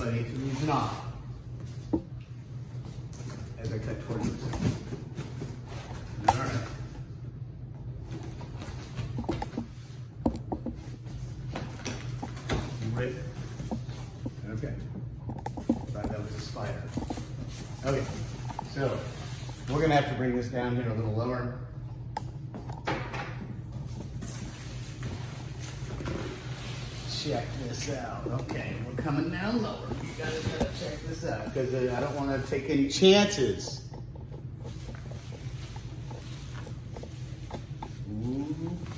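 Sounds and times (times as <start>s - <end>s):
steady low hum: 0.0s - 38.9s.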